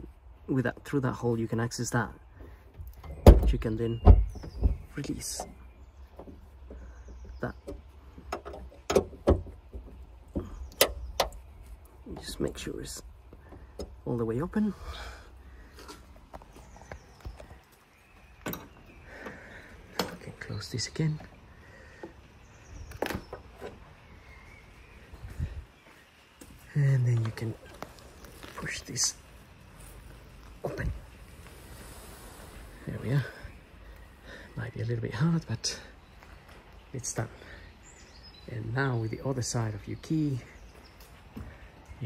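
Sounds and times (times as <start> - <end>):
dull thump: 3.1 - 5.6.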